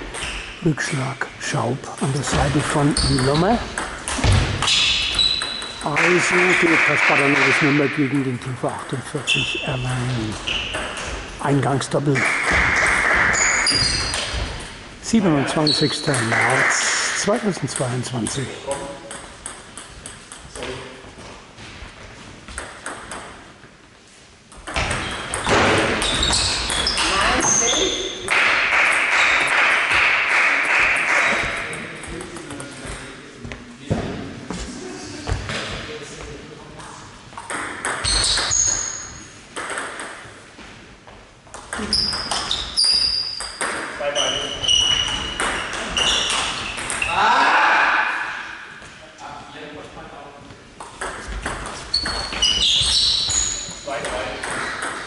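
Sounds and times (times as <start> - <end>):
shoes squeaking on floor: 0.0 - 0.7, 2.3 - 3.5, 4.2 - 5.9, 9.3 - 11.3, 13.2 - 14.6, 24.8 - 28.3, 38.0 - 39.4, 41.8 - 47.2, 51.2 - 54.8
players' voices: 0.6 - 4.3, 5.8 - 10.5, 15.0 - 19.2
ping pong ball clicking: 18.7 - 20.5, 39.6 - 40.2, 46.3 - 47.1, 50.8 - 52.2.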